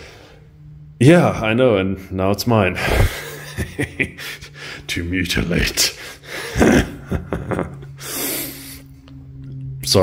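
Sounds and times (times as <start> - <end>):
breathy intake of breath: 0.0 - 0.6, 8.0 - 9.0
man laughing: 2.7 - 8.8.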